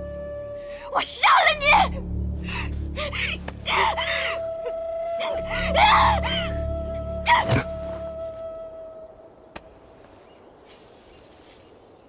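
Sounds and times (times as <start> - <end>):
dramatic background music: 0.0 - 8.9
woman gasping and shouting: 2.5 - 4.4, 5.2 - 6.6.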